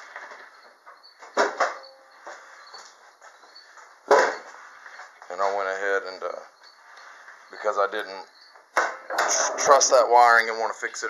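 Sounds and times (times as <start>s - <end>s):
faint handling and shuffling: 2.1s - 8.3s.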